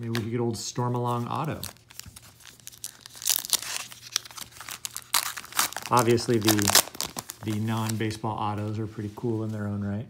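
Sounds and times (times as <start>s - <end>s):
card pack wrapper tearing: 1.0s - 8.1s.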